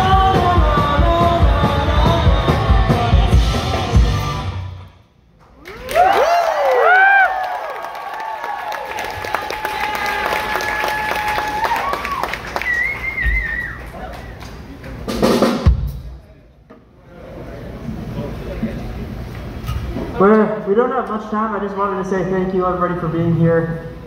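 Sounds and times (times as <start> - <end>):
live rock band playing: 0.0 - 4.9
crowd whooping and cheering: 5.6 - 14.5.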